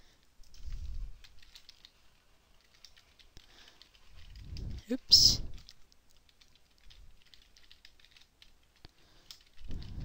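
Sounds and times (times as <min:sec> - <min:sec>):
computer keyboard typing: 0:00.4 - 0:04.9, 0:05.5 - 0:10.0.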